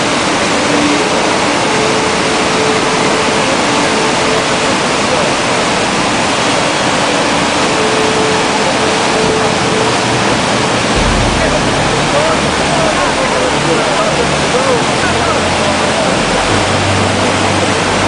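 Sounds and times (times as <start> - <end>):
floodwater rushing: 0.0 - 18.0.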